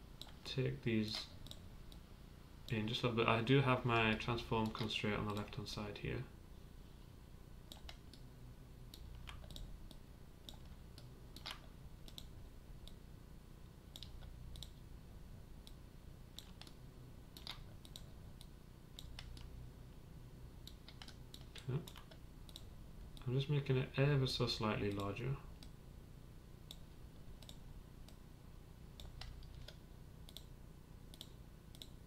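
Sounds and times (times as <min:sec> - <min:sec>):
faint low hum: 0:00.0 - 0:32.0
computer mouse clicking: 0:00.2 - 0:00.4, 0:01.1 - 0:02.0, 0:03.9 - 0:05.6, 0:07.7 - 0:08.3, 0:08.9 - 0:13.0, 0:13.9 - 0:14.8, 0:16.4 - 0:19.5, 0:20.6 - 0:23.3, 0:26.7 - 0:28.2, 0:29.0 - 0:30.5, 0:31.1 - 0:32.0.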